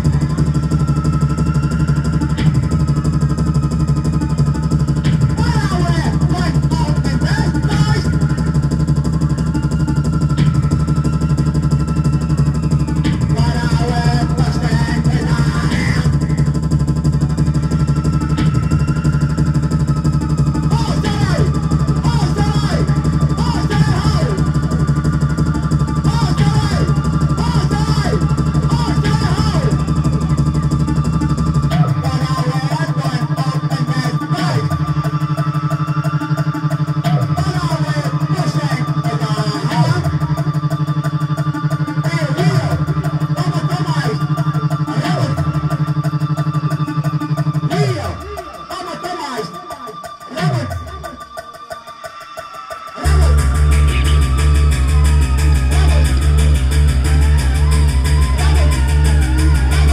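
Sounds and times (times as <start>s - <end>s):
low bass drone: 0.0s - 48.8s, 53.0s - 59.9s
keyboard synth: 0.0s - 59.9s
man singing: 13.0s - 16.7s, 20.5s - 30.7s, 31.6s - 51.2s, 52.2s - 56.3s.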